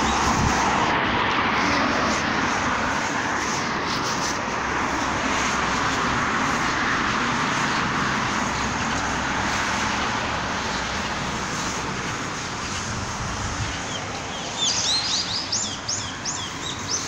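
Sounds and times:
road traffic noise: 0:00.0 - 0:17.0.

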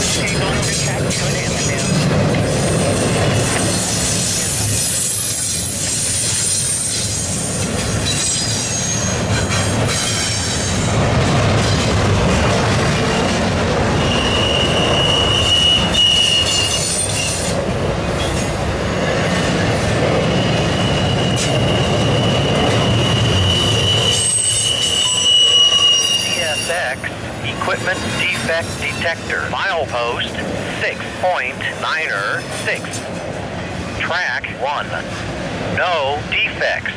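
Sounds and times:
steel wheels rumbling on rails: 0:00.0 - 0:36.9
high wheel squeal: 0:01.8 - 0:10.9, 0:13.0 - 0:17.6, 0:19.2 - 0:27.1, 0:31.1 - 0:33.1.

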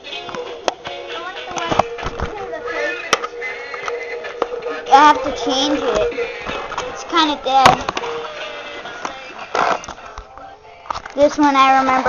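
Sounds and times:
noisy clunk: 0:07.6 - 0:08.3.

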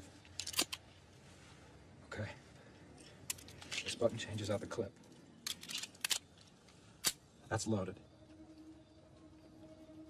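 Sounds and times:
pistol magazine metallic clicks: 0:05.4 - 0:06.3, 0:07.0 - 0:07.2.

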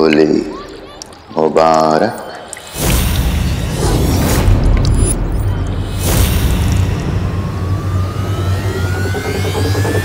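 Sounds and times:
low rumbling drone: 0:02.8 - 0:10.0
thin rising tone: 0:04.8 - 0:10.0.

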